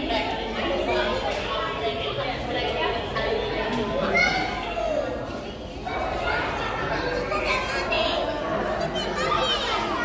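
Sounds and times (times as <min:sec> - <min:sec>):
children's voices: 0:00.0 - 0:10.0
crowd chatter: 0:00.0 - 0:10.0.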